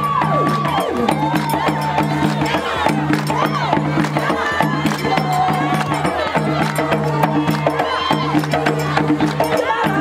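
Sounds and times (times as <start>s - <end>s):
hand drums playing fast rhythm: 0.0s - 10.0s.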